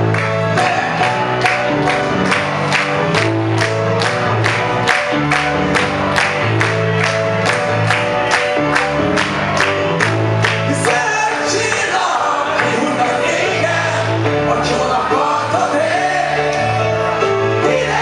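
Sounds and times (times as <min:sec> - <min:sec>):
synthesizer keyboard chords: 0:00.0 - 0:18.0.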